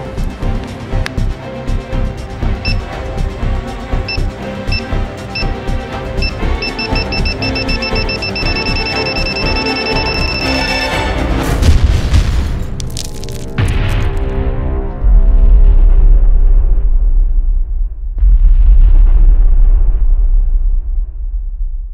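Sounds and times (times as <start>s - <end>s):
dramatic film music: 0.0s - 17.0s
short high timer beeps: 2.7s - 2.9s, 4.1s - 5.6s, 6.2s - 10.8s
loud explosion boom: 11.5s - 12.8s, 13.6s - 21.9s.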